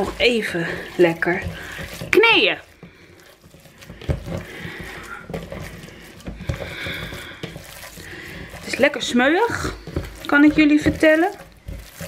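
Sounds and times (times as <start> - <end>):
wet squelching of kneaded meat: 0.0 - 12.0.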